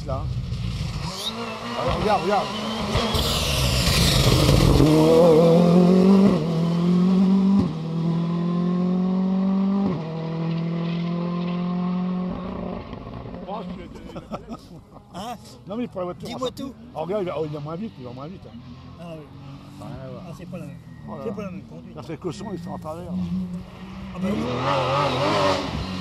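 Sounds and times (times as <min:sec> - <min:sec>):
rally car accelerating past: 0:00.4 - 0:13.5, 0:23.1 - 0:26.0.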